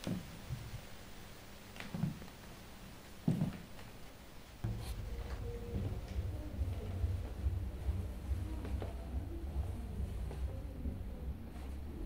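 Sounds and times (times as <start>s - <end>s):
soft dull thump: 4.6s - 7.0s
low rumbling drone: 4.7s - 12.0s.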